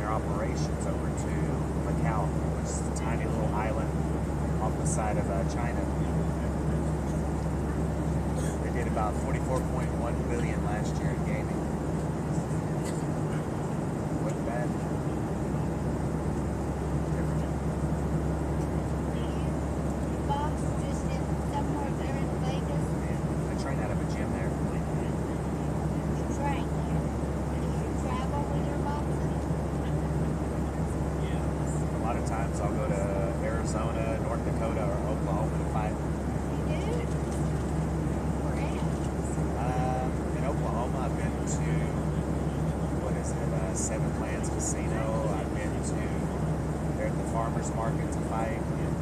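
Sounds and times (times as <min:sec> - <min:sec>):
faint indistinct voices: 0:00.0 - 0:03.9, 0:04.6 - 0:13.6, 0:14.2 - 0:15.8, 0:20.2 - 0:37.4, 0:38.3 - 0:46.4, 0:47.0 - 0:49.0
airliner cabin drone: 0:00.0 - 0:49.0.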